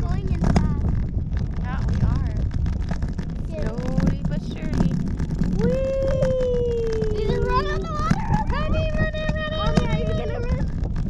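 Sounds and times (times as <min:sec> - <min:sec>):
wind on microphone: 0:00.0 - 0:11.0.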